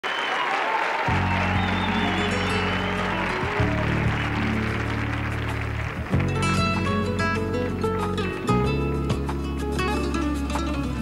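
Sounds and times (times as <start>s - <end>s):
audience applauding: 0.0s - 7.3s
band playing low held notes: 1.1s - 7.9s.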